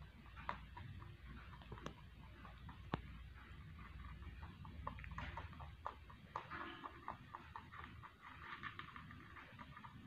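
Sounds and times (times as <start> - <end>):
rabbit crunching dry pellets: 0.0 - 10.0.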